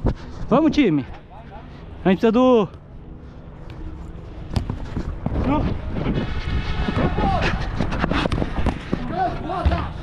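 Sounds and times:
wind rumble on microphone: 3.7s - 10.0s
players shouting: 9.0s - 10.0s.

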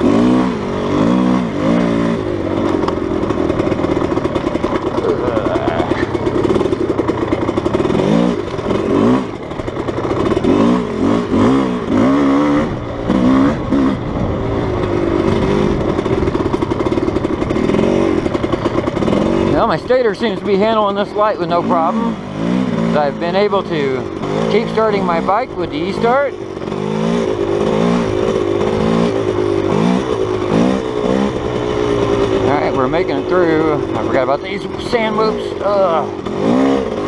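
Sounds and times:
dirt bike engine revving: 0.0s - 37.0s.

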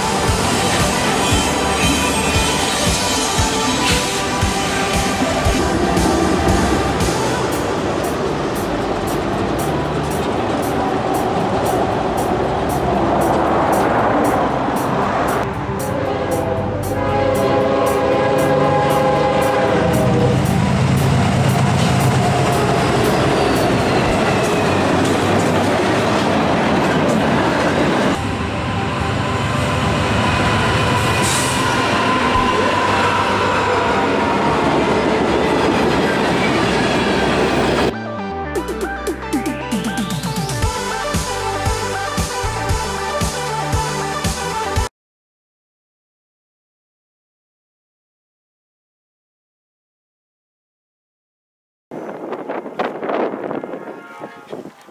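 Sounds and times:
locomotive horn: 0.0s - 11.6s, 13.1s - 39.0s, 40.6s - 44.9s, 52.6s - 54.9s
freight train cars clattering: 0.0s - 15.3s, 19.9s - 37.9s.

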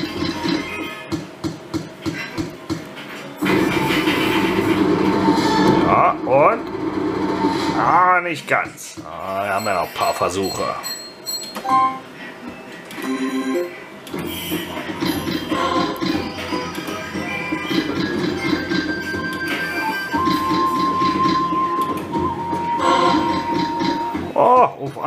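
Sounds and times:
slot machine game music: 9.7s - 12.1s, 18.0s - 24.2s.

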